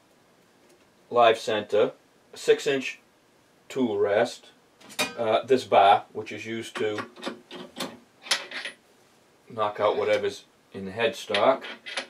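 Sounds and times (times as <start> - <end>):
metal parts scraping and rubbing: 7.2 - 8.8, 9.7 - 10.2, 11.3 - 12.0.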